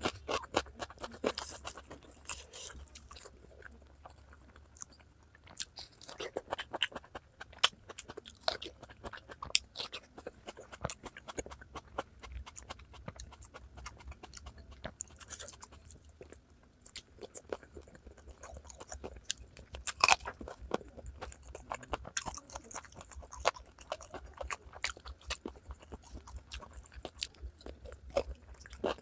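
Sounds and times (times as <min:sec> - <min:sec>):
chewing and crunching: 0:00.0 - 0:29.0.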